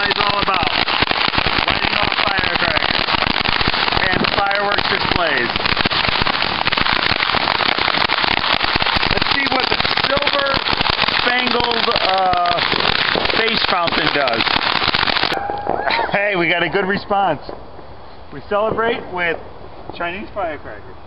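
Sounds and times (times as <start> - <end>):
firecrackers crackling: 0.0 - 20.8
people calling out: 15.4 - 16.1.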